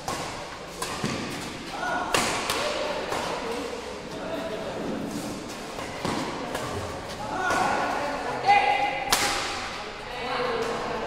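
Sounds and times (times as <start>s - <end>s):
rackets smacking shuttlecock: 0.0s - 3.9s, 5.3s - 8.2s, 9.0s - 9.8s.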